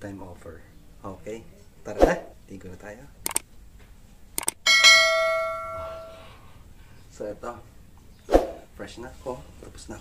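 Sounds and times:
mouse clicks: 0:03.2 - 0:03.4, 0:04.4 - 0:04.6
bell ding: 0:04.7 - 0:06.3.

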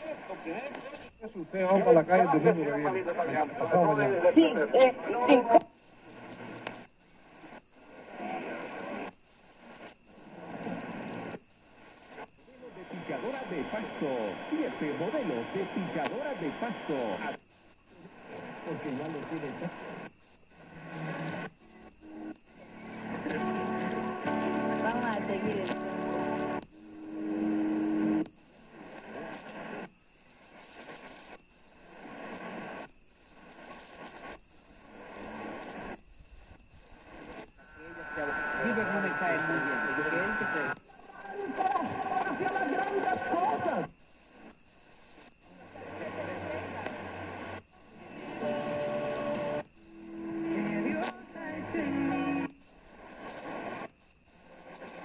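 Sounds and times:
radio being tuned: 0:00.0 - 0:55.0
radio static hiss: 0:00.0 - 0:55.0
steady low hum: 0:00.0 - 0:55.0.

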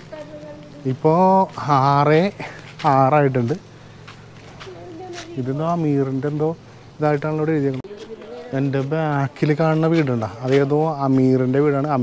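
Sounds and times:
man talking: 0:00.9 - 0:03.6, 0:05.4 - 0:12.0.

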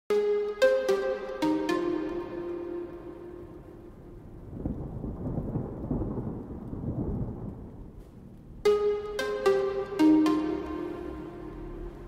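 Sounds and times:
held music note: 0:08.7 - 0:12.0.

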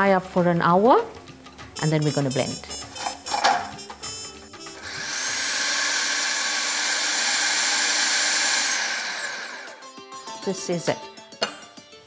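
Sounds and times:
food processor motor running: 0:04.7 - 0:09.8.

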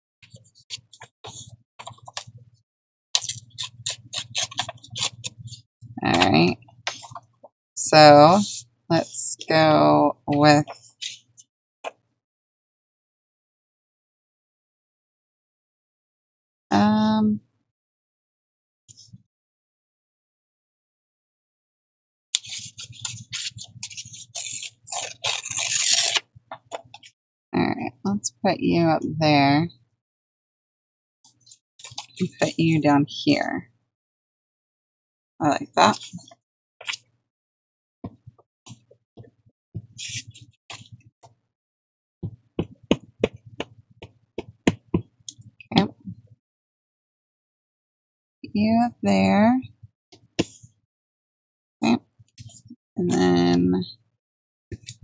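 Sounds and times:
paper tearing: 0:03.2 - 0:05.4, 0:22.4 - 0:26.3.

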